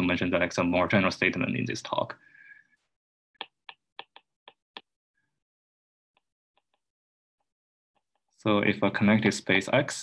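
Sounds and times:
stylus tapping on glass screen: 0:03.4 - 0:04.9.

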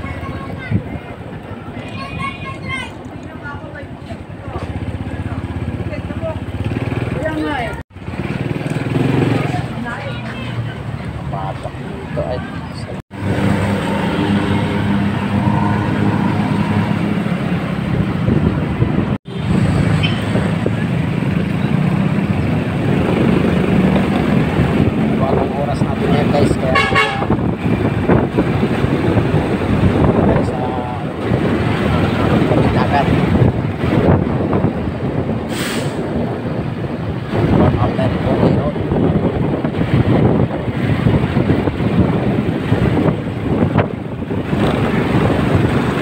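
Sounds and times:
road traffic: 0:00.0 - 0:46.0
vehicle horn toots: 0:26.7 - 0:27.4.

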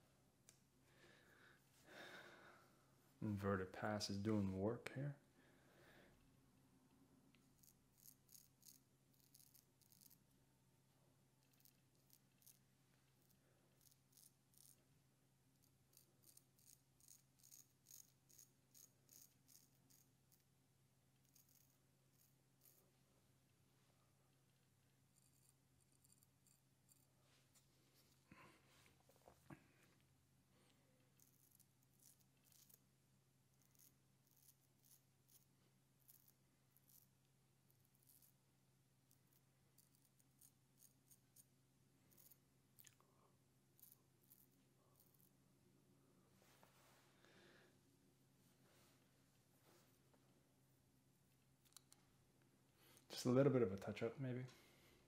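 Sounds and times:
low steady hum: 0:00.0 - 0:55.0
razor scraping stubble: 0:07.5 - 0:10.2, 0:15.6 - 0:20.5, 0:31.2 - 0:32.9.

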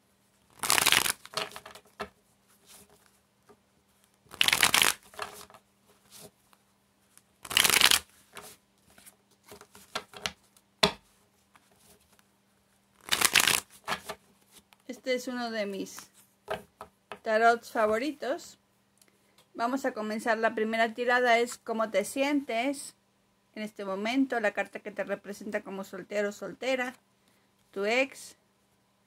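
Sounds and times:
cards rustling while shuffled: 0:00.5 - 0:03.2, 0:03.9 - 0:10.6, 0:13.0 - 0:14.8.

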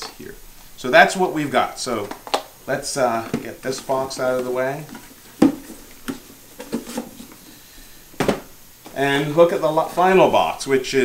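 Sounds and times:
cardboard boxes knocking on countertop: 0:05.4 - 0:07.1, 0:08.2 - 0:08.5.

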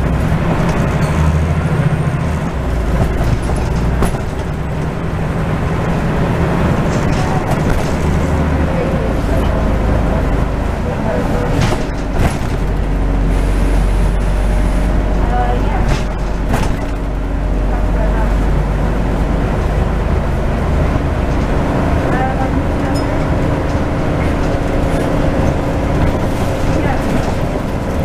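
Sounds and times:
bus diesel engine running: 0:00.0 - 0:28.0
sharp rattles: 0:02.5 - 0:10.3.

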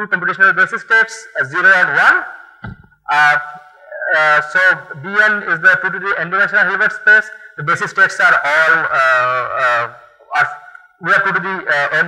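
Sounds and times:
man speaking over sound system: 0:00.0 - 0:02.4, 0:03.1 - 0:12.0.

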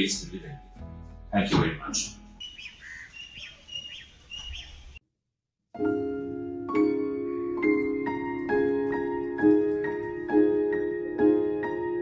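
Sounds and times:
birds chirping: 0:02.4 - 0:05.0.

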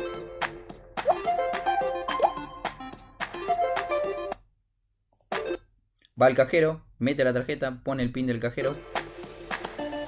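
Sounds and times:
light plucked background music: 0:00.0 - 0:04.4, 0:08.4 - 0:10.0
rising blip sound effect: 0:01.1 - 0:01.3, 0:02.1 - 0:02.4.

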